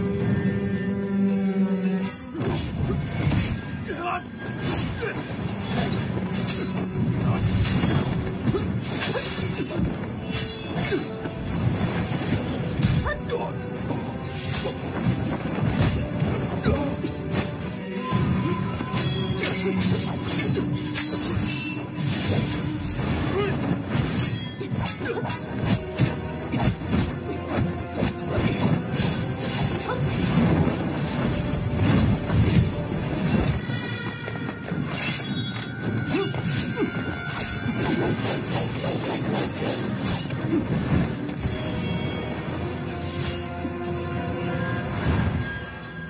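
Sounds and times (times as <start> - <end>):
action film music: 0.0 - 46.0.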